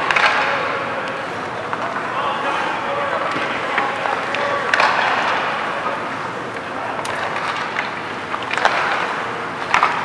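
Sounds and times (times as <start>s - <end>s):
skates on ice: 7.0s - 10.0s.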